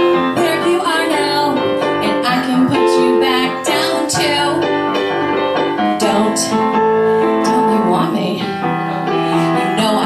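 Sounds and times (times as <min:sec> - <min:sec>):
piano accompaniment: 0:00.0 - 0:10.0
woman singing into a microphone: 0:00.1 - 0:04.8, 0:05.9 - 0:08.5, 0:09.3 - 0:10.0.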